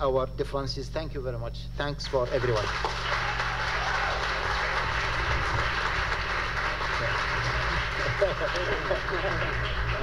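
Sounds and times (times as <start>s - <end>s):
audience applauding: 2.3s - 10.0s.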